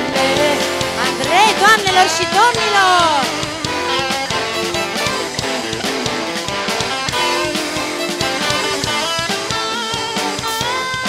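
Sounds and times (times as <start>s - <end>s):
bass guitar: 0.0s - 11.0s
drum kit steady beat: 0.0s - 11.0s
electric guitars: 0.0s - 11.0s.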